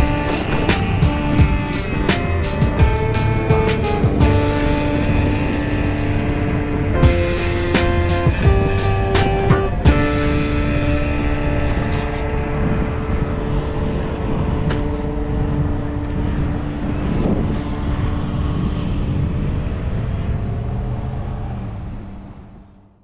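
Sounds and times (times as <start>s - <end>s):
held music notes: 0.0s - 20.0s
bicycle rolling rumble: 0.0s - 23.0s
steady wind: 0.0s - 23.0s
vehicle passing: 0.0s - 23.0s.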